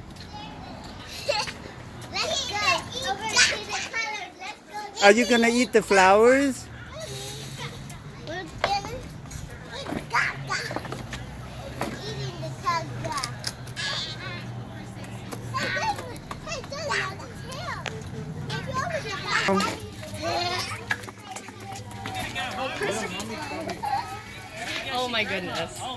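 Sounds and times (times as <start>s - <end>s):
young children playing and babbling: 0.2s - 5.9s, 6.6s - 24.8s.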